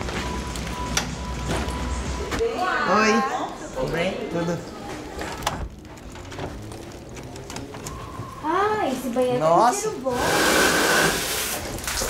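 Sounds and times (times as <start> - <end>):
faint background music: 0.0 - 10.4.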